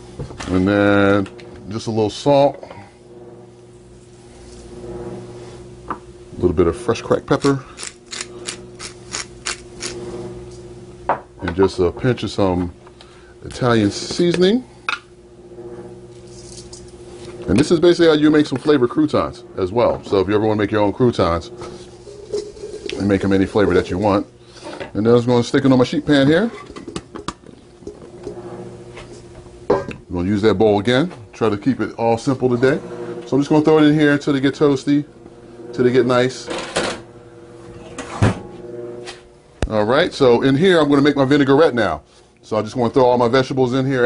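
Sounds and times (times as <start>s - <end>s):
steady low hum: 0.0s - 44.0s
dried herbs sprinkling: 21.8s - 23.6s.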